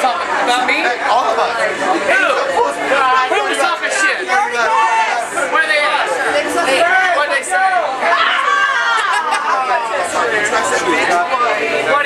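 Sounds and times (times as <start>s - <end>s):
people talking and laughing: 0.0s - 12.0s.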